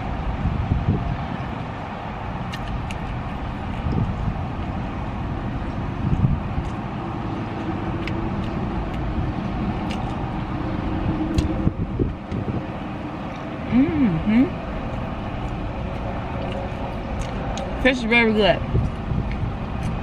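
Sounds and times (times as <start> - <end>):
chewing clicks: 2.5 - 4.0, 6.1 - 10.2, 11.3 - 11.5, 14.8 - 17.8.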